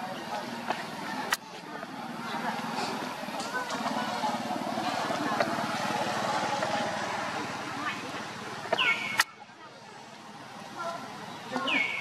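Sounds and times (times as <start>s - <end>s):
engine running: 0.0s - 12.0s
indistinct people's voices: 0.0s - 12.0s.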